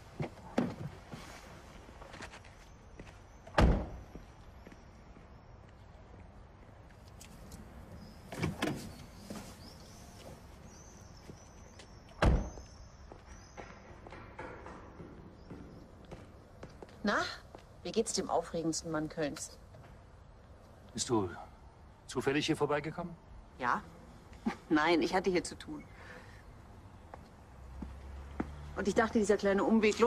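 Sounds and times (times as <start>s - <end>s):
car door slamming: 3.6s - 4.0s, 12.2s - 12.6s.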